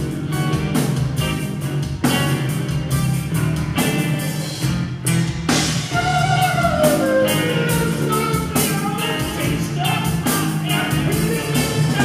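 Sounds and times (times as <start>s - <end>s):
metal band playing live: 0.0s - 12.0s.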